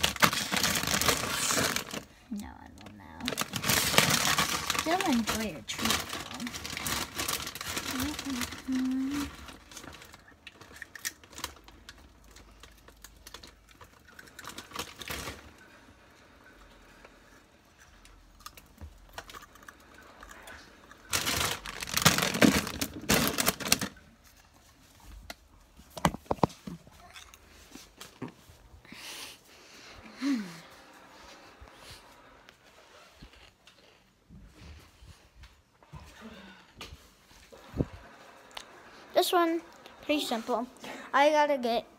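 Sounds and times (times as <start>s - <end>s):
chips crunching: 0.0s - 2.1s, 3.3s - 15.4s, 18.2s - 24.0s
snack bag crinkling: 0.0s - 15.6s, 18.0s - 24.4s.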